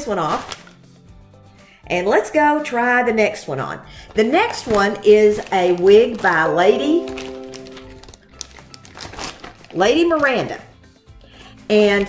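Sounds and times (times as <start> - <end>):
plastic wrapping crinkling: 4.0 - 10.5
voice holding a note: 6.5 - 8.0.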